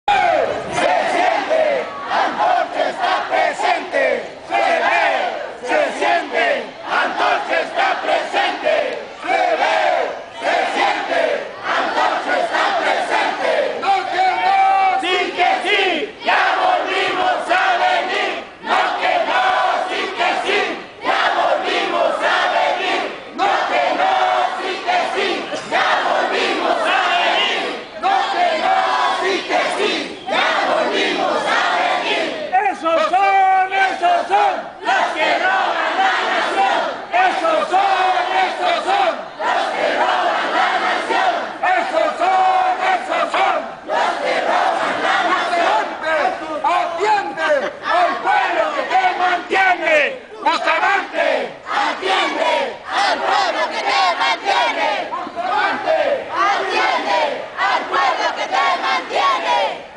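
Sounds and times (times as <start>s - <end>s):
crowd shouting slogans: 0.1s - 59.9s.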